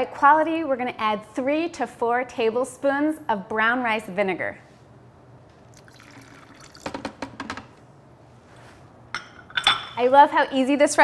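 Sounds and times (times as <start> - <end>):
liquid dripping: 5.6 - 7.2.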